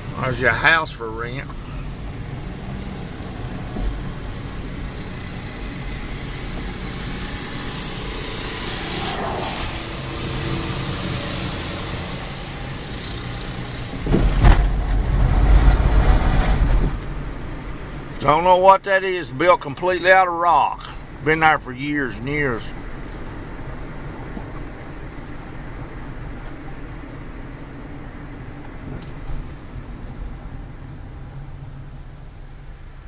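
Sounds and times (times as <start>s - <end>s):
road hiss: 0.0s - 18.3s, 27.2s - 32.9s
car engine hum: 0.0s - 33.0s
low rumble: 1.1s - 18.1s.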